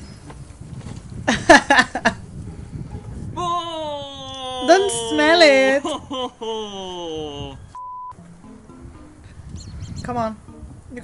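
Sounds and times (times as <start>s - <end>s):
man's vocal sound sliding down: 6.4s - 7.7s
censor bleep: 7.7s - 8.2s.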